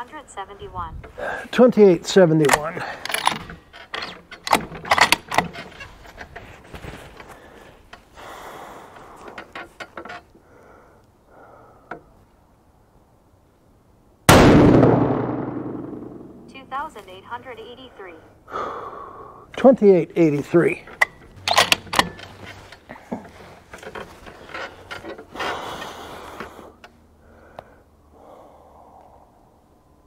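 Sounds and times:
rifle shot: 14.3 - 16.6.

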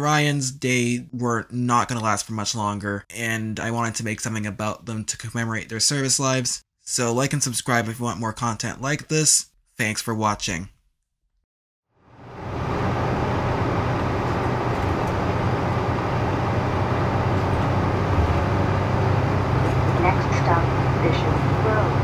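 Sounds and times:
bus engine and road drone: 12.0 - 22.0.

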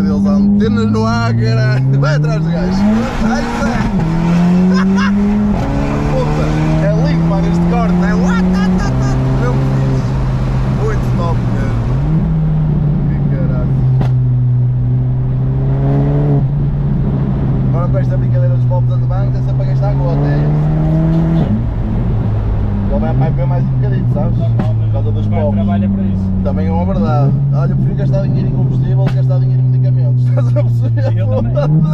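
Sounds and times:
car engine accelerating through gears: 0.0 - 31.9.

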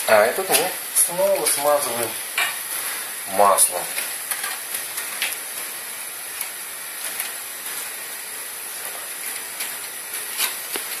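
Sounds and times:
pancake sizzling in a pan: 0.0 - 11.0
foil-wrapped butter rustling: 8.7 - 11.0.

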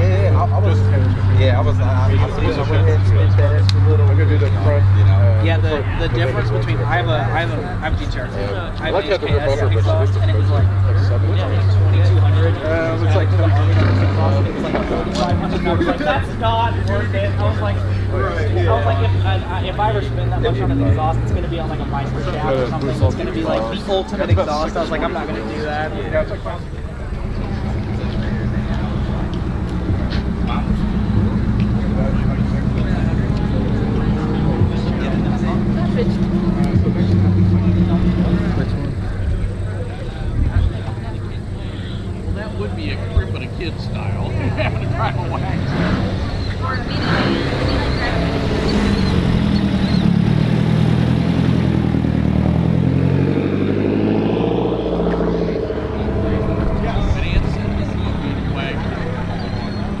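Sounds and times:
car driving slowly past: 0.0 - 60.0
indistinct voices: 0.0 - 60.0
steady engine drone: 0.0 - 60.0.

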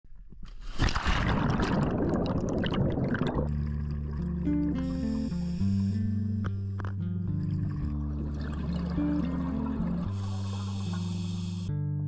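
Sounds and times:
water splashing and gurgling: 0.5 - 5.8, 6.8 - 11.2
background music with held notes: 3.6 - 12.0.

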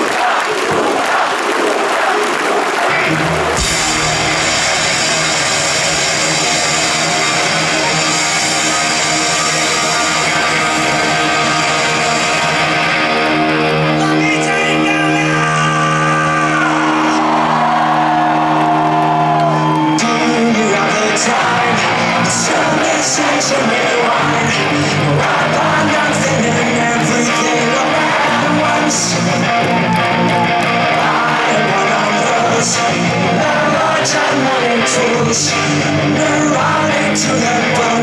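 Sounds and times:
crowd cheering and yelling: 0.0 - 38.0
person singing: 19.5 - 38.0.

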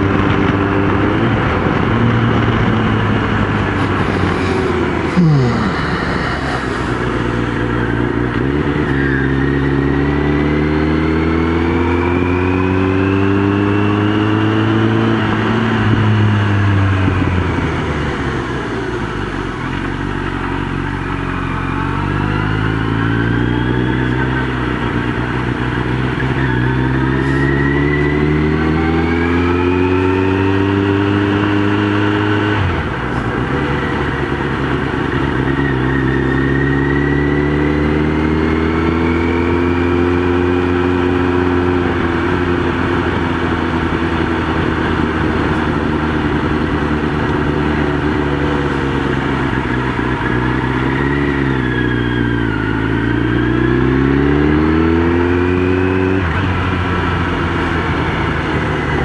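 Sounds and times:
motorcycle engine accelerating: 0.0 - 59.0.

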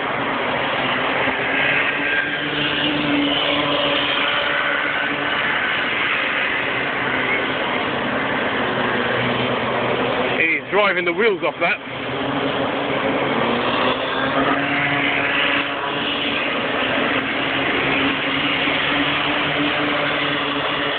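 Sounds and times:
kart engines buzzing: 0.0 - 20.9.

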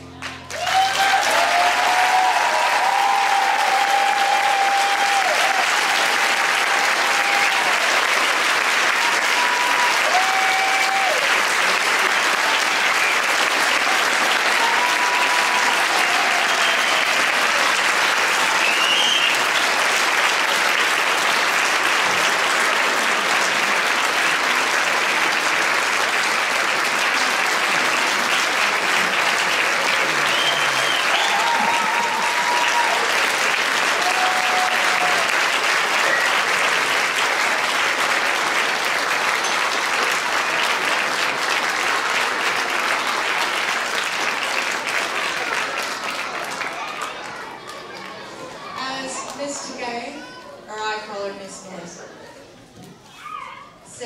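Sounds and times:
audience applauding: 0.0 - 50.4.

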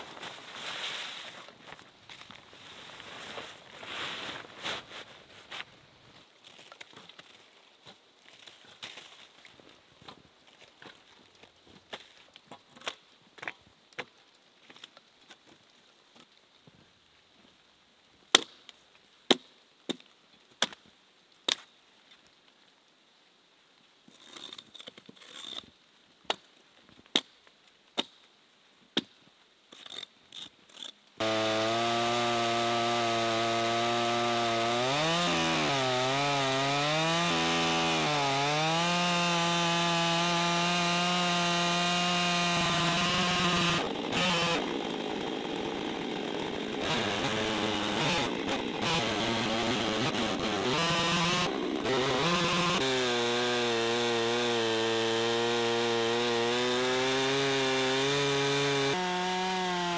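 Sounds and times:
chainsaw cutting log: 29.8 - 59.9.

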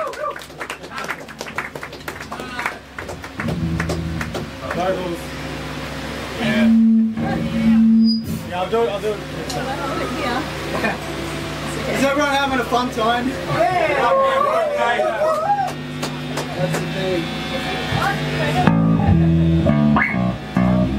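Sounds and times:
electric guitar and bass notes: 2.8 - 13.6, 15.8 - 20.9
people talking: 4.6 - 5.4, 6.4 - 11.0, 11.7 - 15.6, 16.3 - 19.4.

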